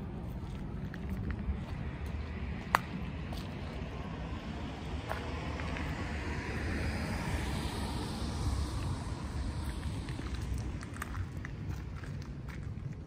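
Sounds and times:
low outdoor rumble: 0.0 - 13.0
vehicle passing: 0.0 - 13.0.

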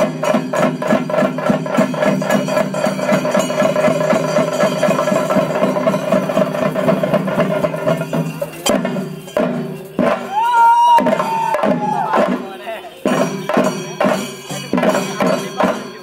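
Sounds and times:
drums beaten with sticks: 0.0 - 16.0.

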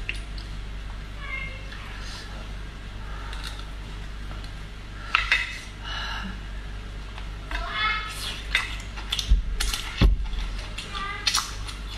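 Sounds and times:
dull thumps: 9.2 - 10.5
lip-smacking clicks: 11.2 - 11.9.

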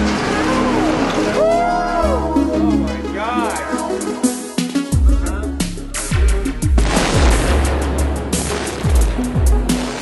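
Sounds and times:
demolition charges crackling: 0.0 - 1.5
hip-hop music: 2.0 - 8.1.

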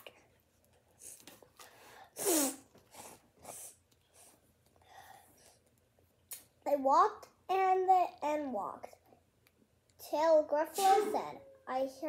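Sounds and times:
sniffs: 1.0 - 5.6
child sneezing: 2.2 - 3.1, 10.7 - 11.4.

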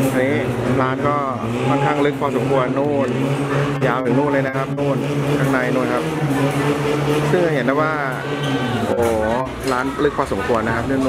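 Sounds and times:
man speaking: 0.0 - 6.1, 8.9 - 11.0.

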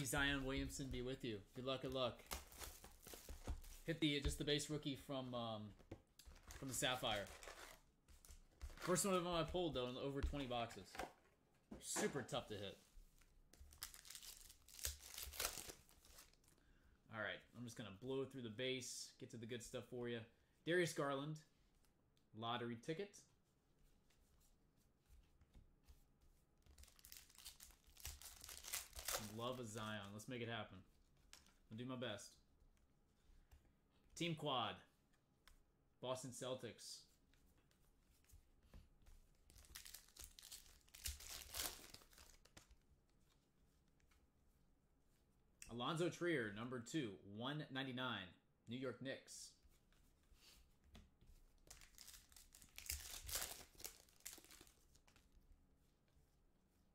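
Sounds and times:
cards flipping and rustling: 0.0 - 4.7, 5.8 - 11.2, 13.2 - 16.6, 26.7 - 30.2, 39.4 - 42.8, 51.6 - 55.3
foil wrapper tearing and crinkling: 13.7 - 16.4, 26.8 - 29.4, 39.5 - 42.4, 51.7 - 54.8.

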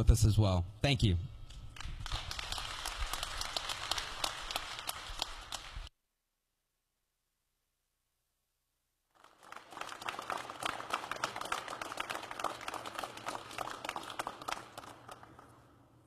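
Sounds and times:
crowd applauding: 1.8 - 5.9, 9.1 - 16.0.

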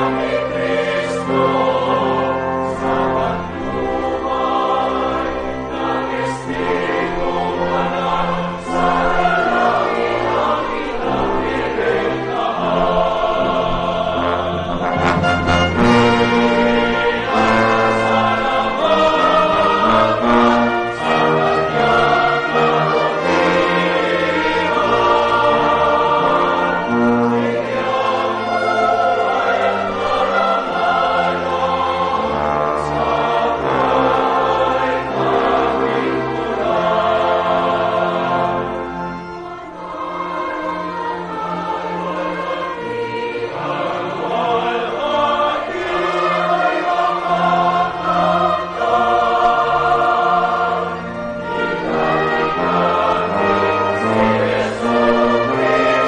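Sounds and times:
choir singing sacred music: 0.0 - 56.0
instrumental accompaniment: 0.0 - 56.0.

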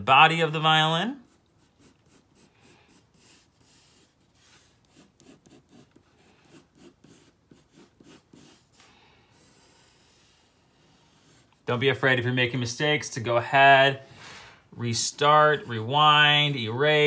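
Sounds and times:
pencil scratching on paper: 1.2 - 11.7, 14.9 - 17.0.

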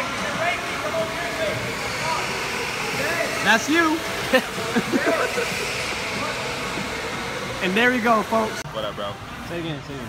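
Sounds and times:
go-karts rushing: 0.0 - 9.5
faint voices in a hall: 0.0 - 10.0.

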